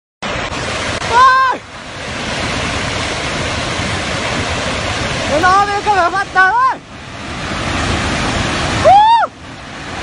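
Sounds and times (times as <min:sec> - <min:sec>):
rush of fast-moving water: 0:00.2 - 0:10.0
person's high-pitched shout: 0:01.1 - 0:01.6.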